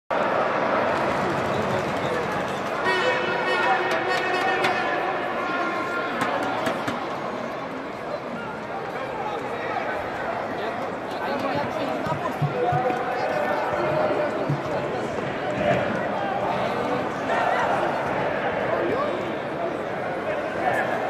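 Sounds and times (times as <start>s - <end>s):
crowd chatter in stands: 0.1s - 21.0s.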